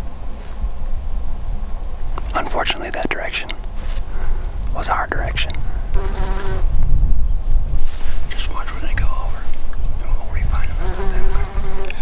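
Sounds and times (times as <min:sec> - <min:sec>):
wind rumble on microphone: 0:00.0 - 0:12.0
person whispering: 0:02.3 - 0:03.6, 0:04.7 - 0:05.6, 0:08.3 - 0:12.0.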